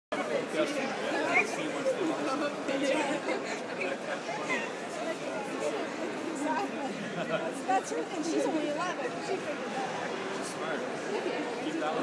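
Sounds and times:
chatter of people talking: 0.1s - 12.0s.

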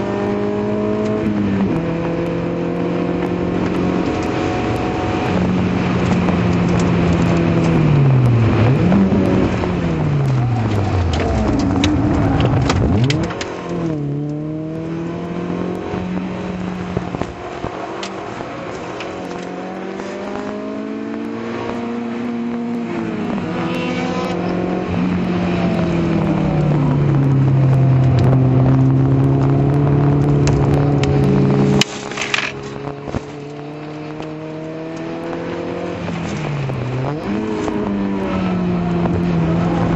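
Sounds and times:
car engine revving: 0.0s - 39.9s.

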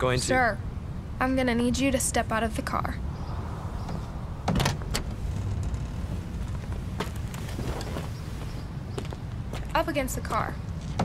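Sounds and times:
car engine rumble: 0.6s - 9.8s
car door opening: 3.8s - 8.2s.

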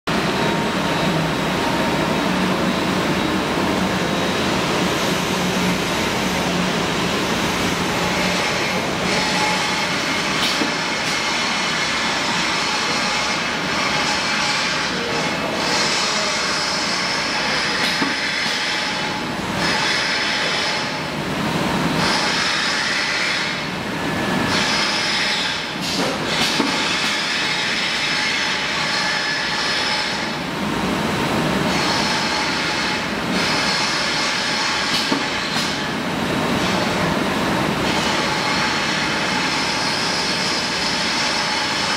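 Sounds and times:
packaging machine whirring: 1.8s - 41.9s.

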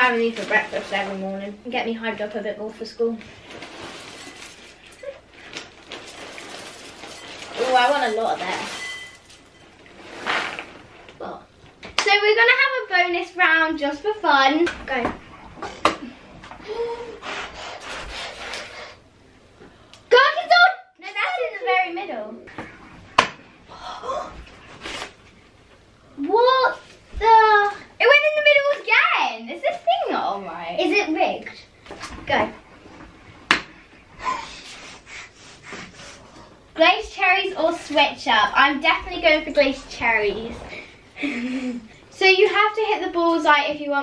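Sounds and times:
girls laughing and gasping: 40.7s - 42.0s.

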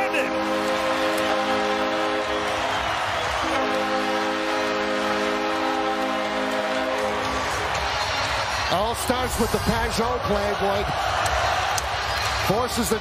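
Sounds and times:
arena goal horn blowing: 0.0s - 8.2s
crowd cheering: 0.0s - 13.0s.

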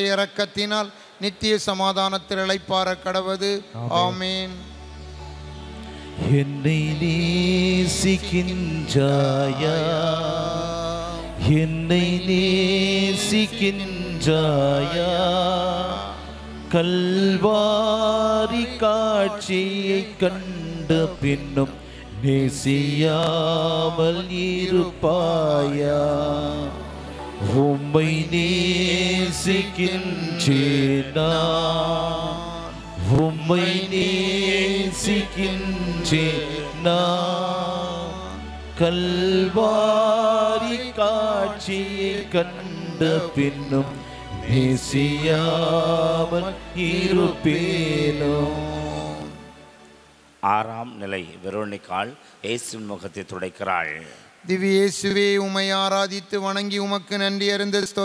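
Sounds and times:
man chanting a prayer: 0.0s - 4.8s, 6.2s - 49.4s, 50.4s - 58.0s
sustained instrumental chord: 2.3s - 50.7s.

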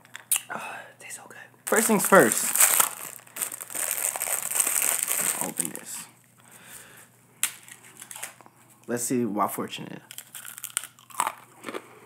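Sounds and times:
plastic wrapper handling: 1.7s - 6.0s, 7.4s - 8.4s.

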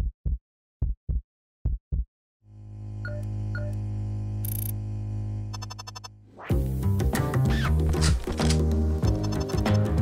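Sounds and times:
short beeps: 5.6s - 6.1s.

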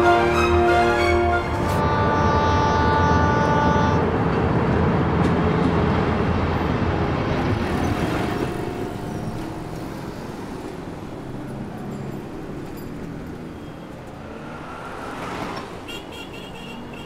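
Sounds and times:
locomotive horn: 0.0s - 4.2s, 15.9s - 17.0s
train rumble: 0.0s - 15.9s
road traffic noise: 0.0s - 17.0s.

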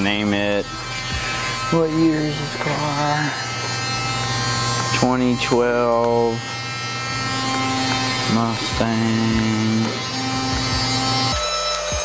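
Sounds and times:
steady electric hum: 0.0s - 12.0s.

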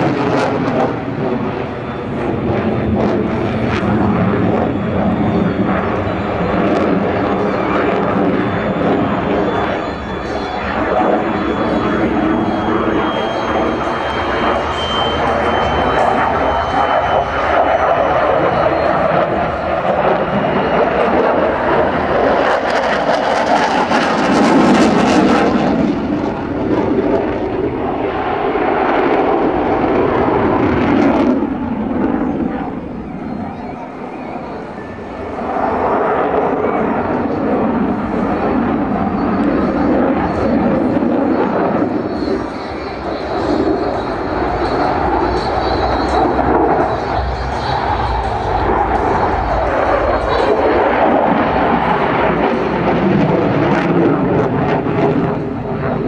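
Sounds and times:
fighter jet engine roar: 0.0s - 56.0s.

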